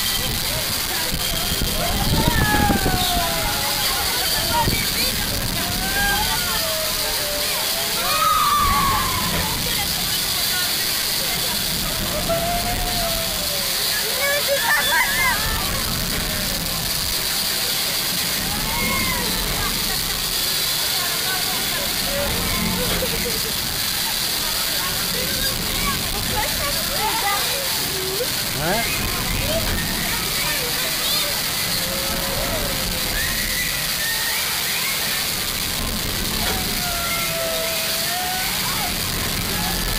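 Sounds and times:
roller coaster train rushing: 0:00.0 - 0:39.9.

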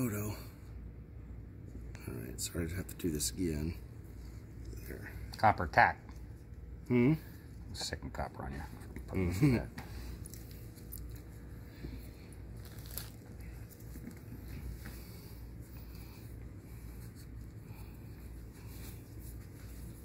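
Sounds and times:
low steady rumble: 0:00.0 - 0:20.0
gauze dressing rustling: 0:09.4 - 0:20.0.

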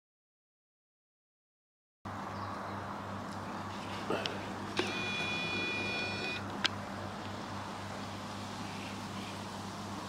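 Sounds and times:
lens zoom motor whining: 0:04.7 - 0:06.5.

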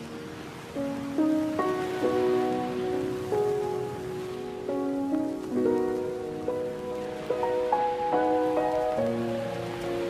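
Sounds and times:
rain-like hiss: 0:00.0 - 0:10.0.

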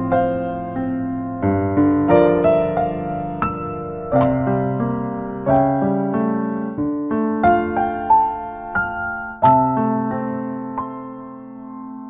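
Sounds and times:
slow soft piano music: 0:00.0 - 0:12.0.

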